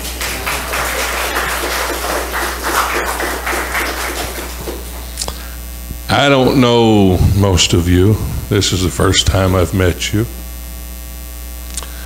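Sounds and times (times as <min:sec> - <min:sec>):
crowd applauding: 0:00.0 - 0:05.2.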